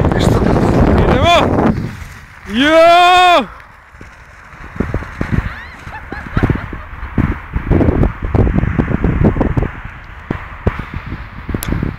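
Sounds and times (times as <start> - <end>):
distant shouts: 2.4 - 3.6.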